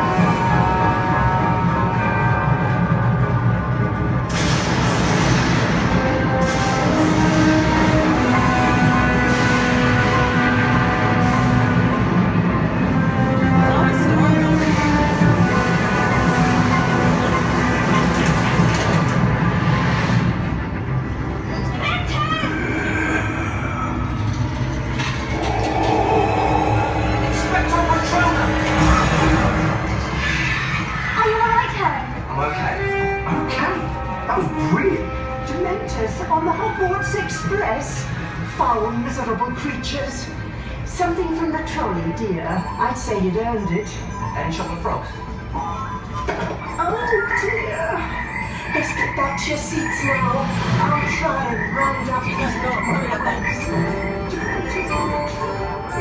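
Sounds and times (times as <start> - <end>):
soundtrack music with held notes: 0.0 - 38.6, 41.8 - 56.0
steady low rumble: 22.6 - 30.1
hissing swell: 25.0 - 29.4.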